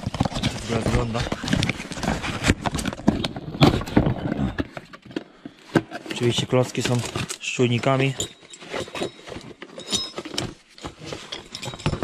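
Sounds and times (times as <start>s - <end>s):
cardboard rustling: 0.0s - 12.0s.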